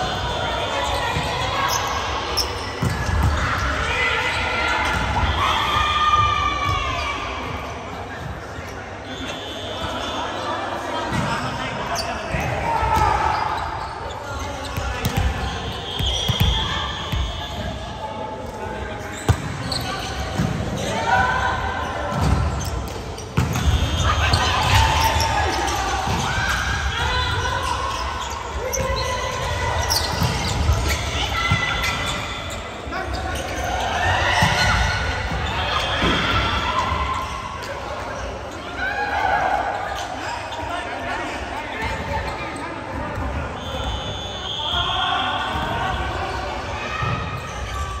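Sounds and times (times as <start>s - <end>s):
players shouting: 23.5s - 37.6s.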